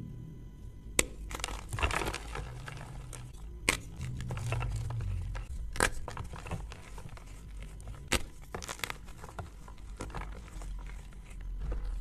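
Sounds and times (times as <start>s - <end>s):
chalk crunching and crumbling: 1.0s - 12.0s.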